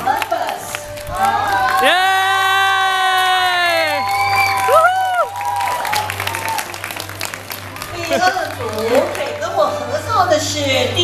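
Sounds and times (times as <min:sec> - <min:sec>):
people clapping: 0:00.0 - 0:09.8
crowd noise: 0:00.0 - 0:11.0
young people screaming with joy: 0:01.2 - 0:06.6.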